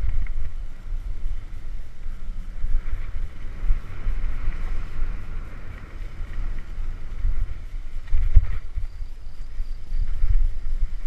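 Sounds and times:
steady hiss: 0.0 - 11.0
wind buffeting microphone: 0.0 - 11.0.

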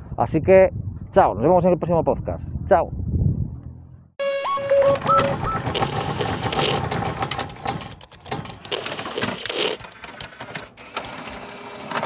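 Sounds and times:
mechanical clicking and rattling: 5.3 - 11.3.

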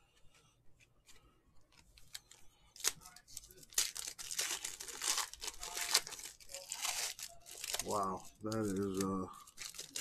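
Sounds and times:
foil card pack crackle: 2.8 - 10.0.

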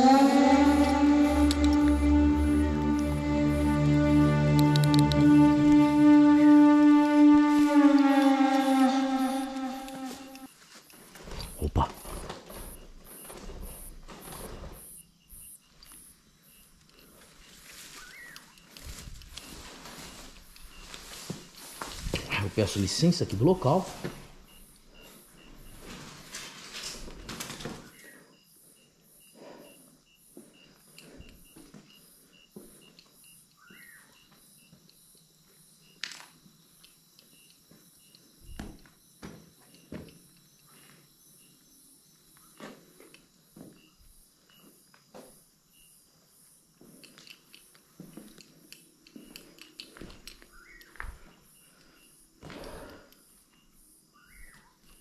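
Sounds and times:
faint high pulsing chirp: 27.8 - 35.2, 50.4 - 52.3, 53.3 - 55.0.

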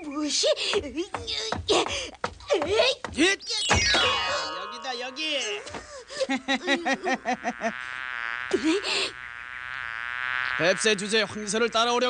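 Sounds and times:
cartoon insect wings buzzing: 3.4 - 12.0.

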